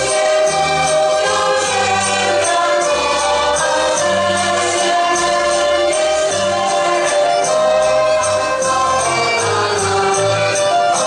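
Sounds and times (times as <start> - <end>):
instrumental accompaniment: 0.0 - 11.0
women singing together: 0.0 - 11.0.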